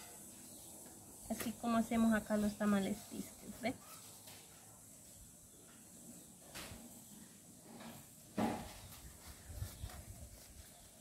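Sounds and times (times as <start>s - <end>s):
leaves rustling and crackling: 0.0s - 11.0s.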